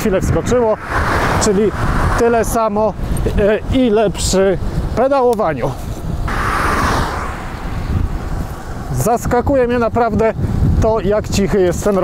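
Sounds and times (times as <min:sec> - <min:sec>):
bike road noise: 0:00.0 - 0:10.9
wind rumbling on microphone: 0:00.0 - 0:12.0.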